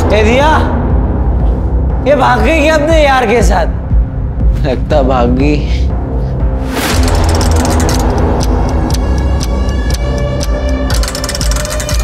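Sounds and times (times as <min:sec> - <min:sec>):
fast percussive hits: 0:06.7 - 0:12.0.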